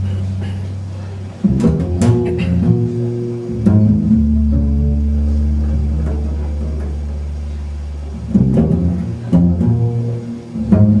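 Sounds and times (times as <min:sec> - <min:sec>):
plucked double bass: 0:00.0 - 0:11.0.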